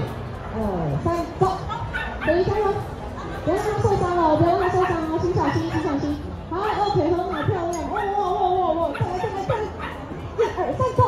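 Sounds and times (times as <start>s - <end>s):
chatter of crowd in hall: 0.0s - 11.0s.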